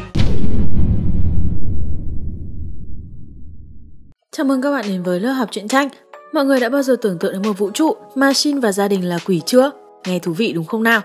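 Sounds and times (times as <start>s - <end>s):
boom impact: 0.0s - 4.2s
low rumble: 0.2s - 4.2s.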